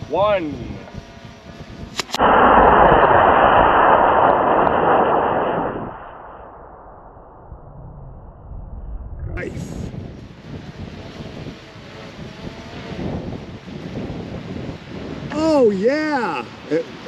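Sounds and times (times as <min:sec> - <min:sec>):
rocket motor rushing hiss: 0:00.3 - 0:06.3
rocket motor igniting pops: 0:01.9 - 0:06.2.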